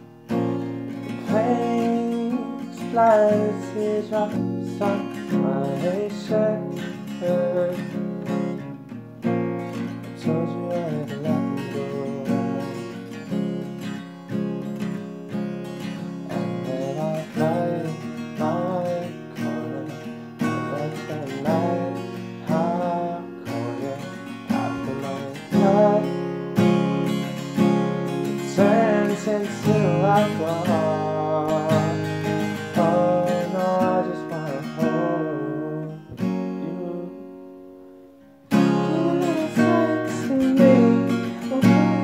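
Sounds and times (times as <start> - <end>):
acoustic guitar strumming: 0.0 - 42.0.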